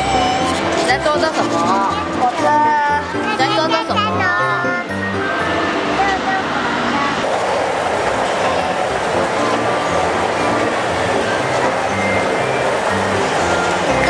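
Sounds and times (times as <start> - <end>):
children's ride train running: 0.0 - 14.0.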